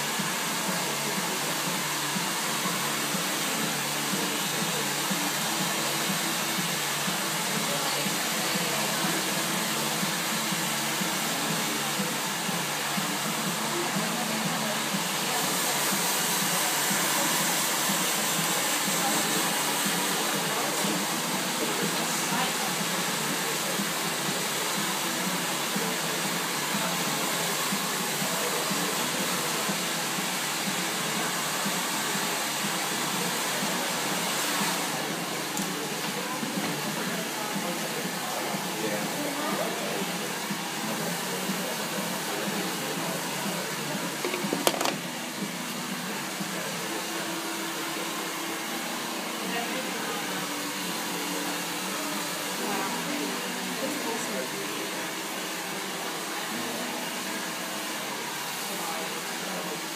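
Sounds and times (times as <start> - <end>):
hair dryer running: 0.0 - 59.9.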